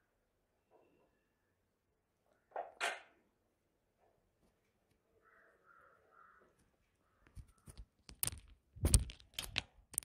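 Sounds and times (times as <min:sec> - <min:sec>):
crow cawing faintly: 0:05.0 - 0:07.8.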